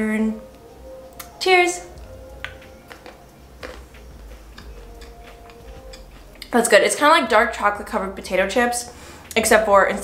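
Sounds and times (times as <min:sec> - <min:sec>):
faint background music: 0:00.0 - 0:10.0
chewing crunchy chocolate: 0:02.0 - 0:06.6.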